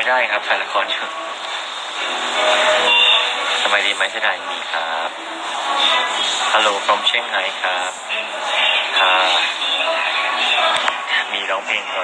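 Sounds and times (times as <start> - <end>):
person singing: 2.0 - 12.0.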